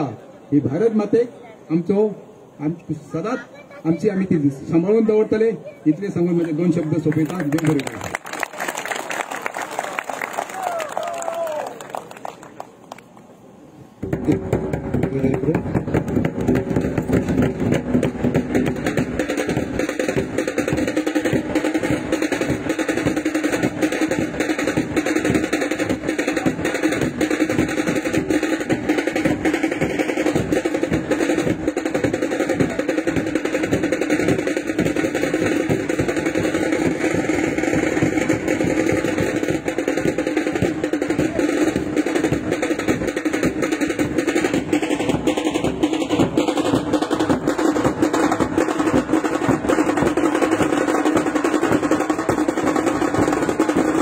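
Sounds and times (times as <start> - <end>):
barrel drums beaten fast: 14.0 - 54.0.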